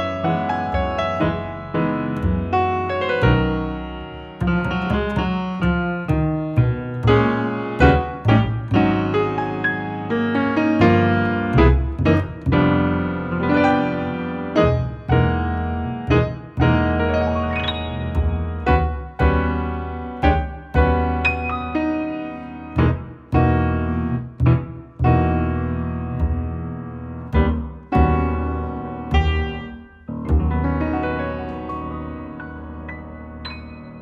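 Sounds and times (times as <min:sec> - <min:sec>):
walking upright bass line: 0:00.0 - 0:32.8
piano chords and melody: 0:00.0 - 0:34.0.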